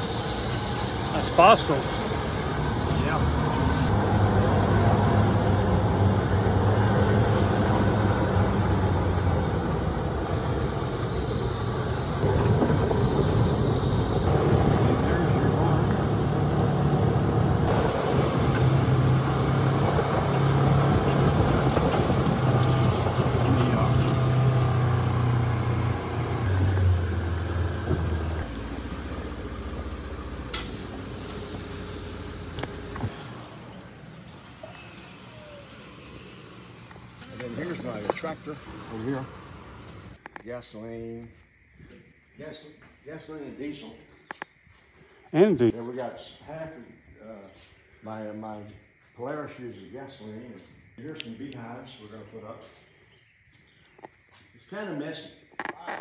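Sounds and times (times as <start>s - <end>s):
utility vehicle engine running: 0.0s - 40.2s.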